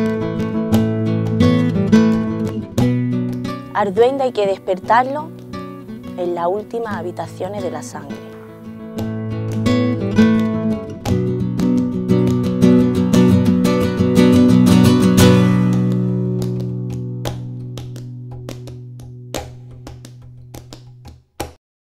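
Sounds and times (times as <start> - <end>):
flamenco acoustic guitar: 0.0 - 21.4.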